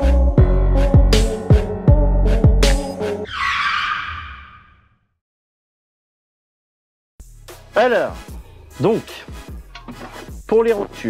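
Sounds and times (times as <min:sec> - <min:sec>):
skid-like screeching effect: 0:03.2 - 0:05.0.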